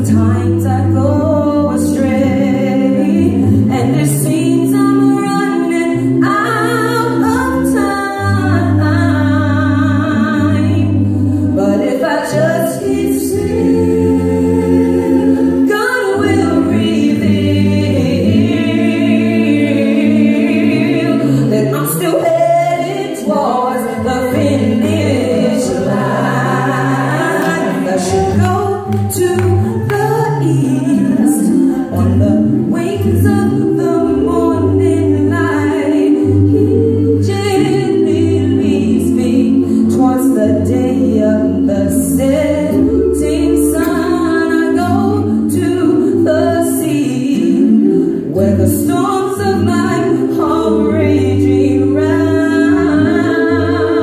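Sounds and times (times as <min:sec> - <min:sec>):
vocal group singing in harmony: 0:00.0 - 0:54.0.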